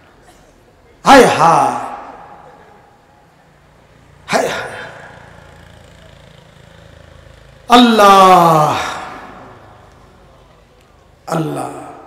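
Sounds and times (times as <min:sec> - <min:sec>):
man speaking over loudspeaker: 0:01.0 - 0:03.0, 0:04.3 - 0:05.4, 0:07.7 - 0:09.6, 0:11.3 - 0:12.0.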